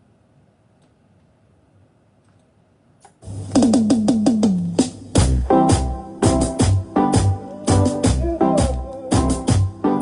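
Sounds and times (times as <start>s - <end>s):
steady bass note: 3.3s - 9.7s
electronic tom hits: 3.5s - 7.3s.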